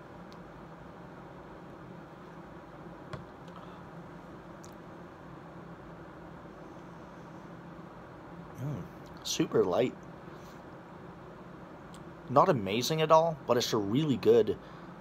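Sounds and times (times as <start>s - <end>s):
low room hum: 0.0s - 15.0s.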